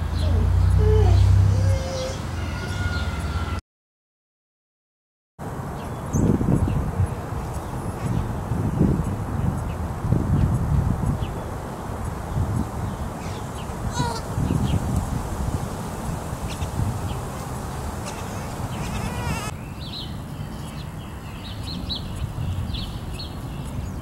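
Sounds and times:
trilling bird calls: 0.1 - 3.6, 13.2 - 14.8, 16.4 - 24.0.

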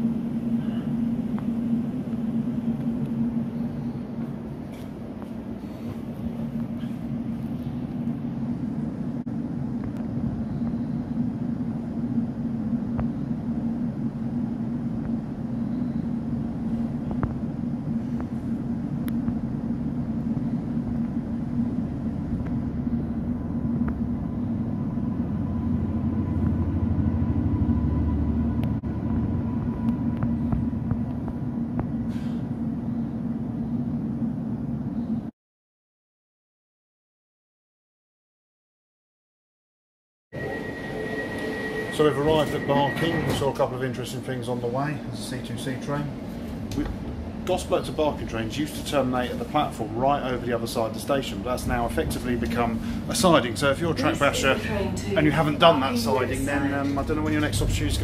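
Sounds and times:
train cabin hum and rumble: 0.0 - 35.3, 40.4 - 58.0
freight train passing: 17.6 - 34.9, 40.4 - 58.0.

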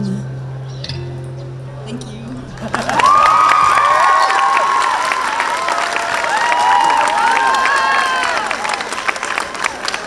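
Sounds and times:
people clapping: 2.6 - 10.0
children cheering and shouting: 2.8 - 8.8.

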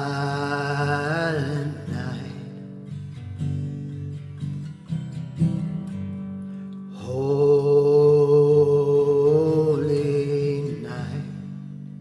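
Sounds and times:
soft guitar accompaniment: 0.0 - 12.0.

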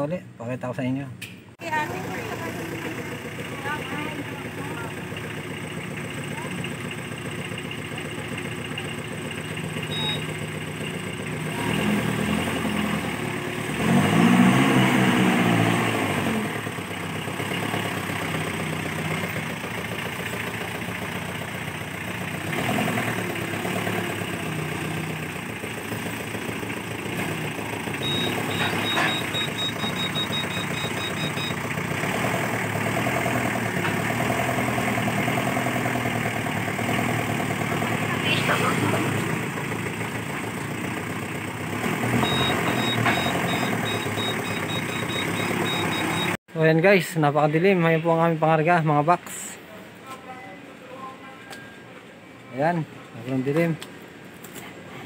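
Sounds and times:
forklift engine revving: 1.6 - 46.4.

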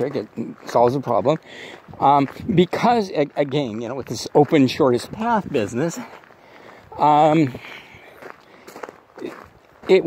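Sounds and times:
man's voice: 0.0 - 6.2, 6.9 - 8.2, 9.2 - 10.0
footsteps walking: 0.0 - 10.0.

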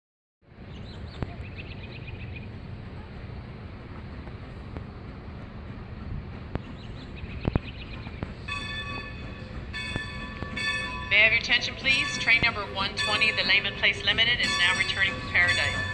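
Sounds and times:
low outdoor rumble: 0.4 - 15.9.

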